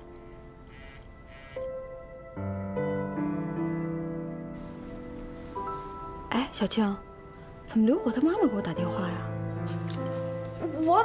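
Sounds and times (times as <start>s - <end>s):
soft music of sustained notes: 0.0s - 11.0s.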